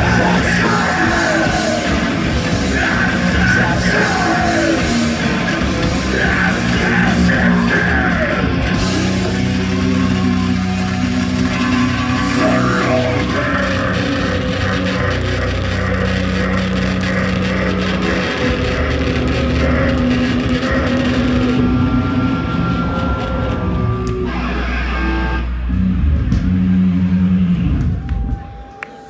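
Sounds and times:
punk band playing live: 0.0 - 28.6
distorted electric guitars: 0.0 - 28.7.

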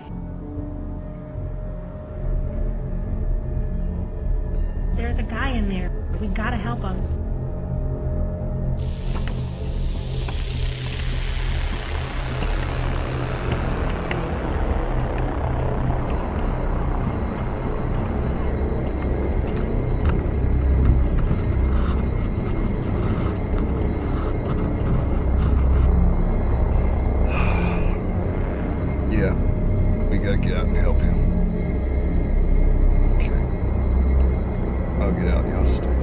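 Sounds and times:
film score music: 0.0 - 36.0
steady low rumble: 1.4 - 36.0.

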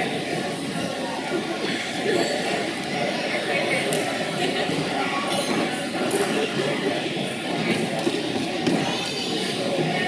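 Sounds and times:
crowd chatter in echoing hall: 0.0 - 10.0.

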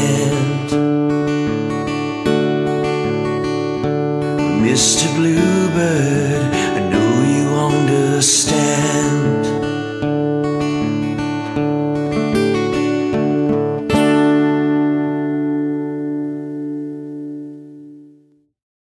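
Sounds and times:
strummed guitar chord ringing: 0.0 - 18.3
acoustic guitar playing: 0.0 - 18.4.

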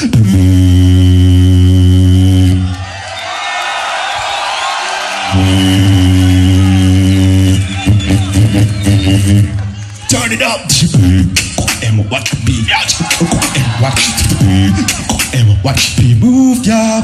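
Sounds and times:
beatbox bass drone: 0.0 - 2.8, 5.3 - 17.0
crowd cheering and screaming: 2.6 - 10.5, 12.6 - 15.4
percussive beatbox hits: 10.6 - 16.4.

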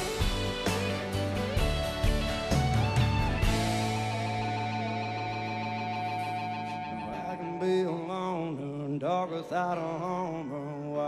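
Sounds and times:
drums: 0.0 - 7.2
country band playing: 0.0 - 11.0
electric guitar: 0.0 - 11.0.

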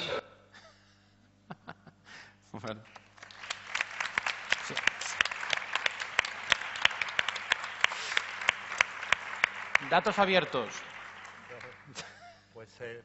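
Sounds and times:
audience applauding: 2.8 - 12.3.

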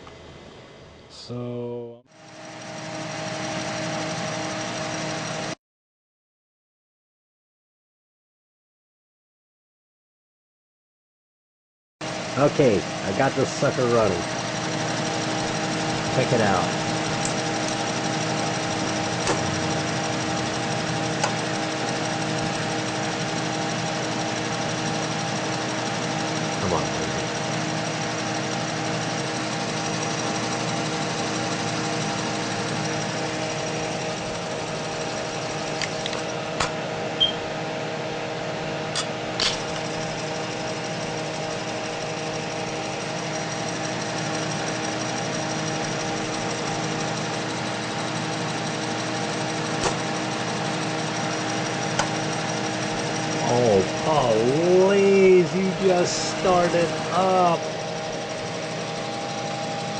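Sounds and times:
disk drive humming and whirring: 2.2 - 5.6, 12.0 - 59.9
disk drive clicks: 51.9 - 52.2.

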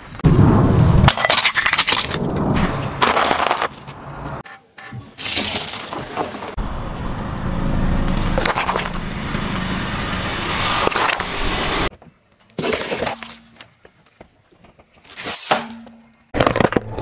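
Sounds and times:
engine and tyre rumble: 0.0 - 4.5, 5.3 - 12.6.

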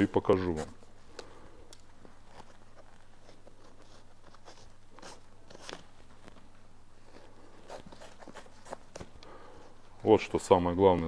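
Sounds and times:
laces rustling: 1.7 - 10.0.

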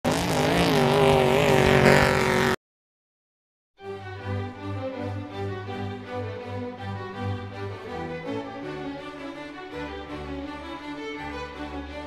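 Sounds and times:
engine running at high revs: 0.0 - 2.6.

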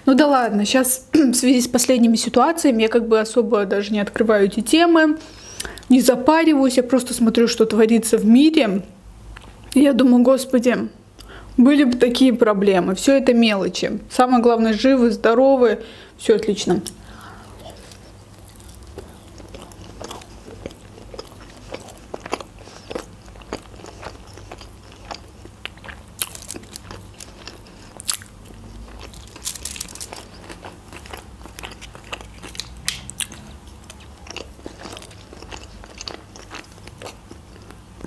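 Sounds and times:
person chewing food: 16.8 - 38.0.

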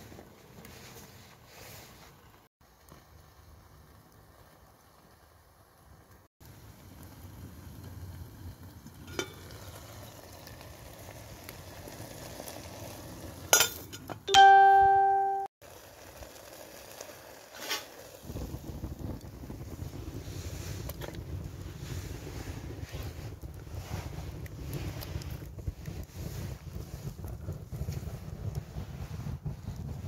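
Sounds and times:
wood fire crackling: 0.0 - 30.0
wind rumbling on microphone: 18.1 - 30.0.

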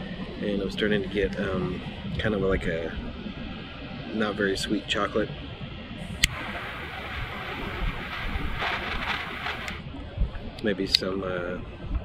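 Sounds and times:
wind rumble on microphone: 0.0 - 12.0
jet flame hissing: 6.0 - 9.8.

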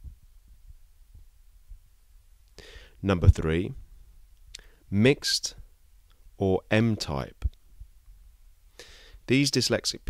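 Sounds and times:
faint low room hum: 0.0 - 10.0.

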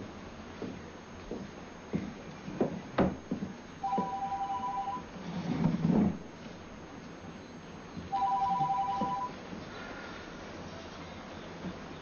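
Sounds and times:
mobile phone ringing: 3.8 - 5.1, 8.1 - 9.4.

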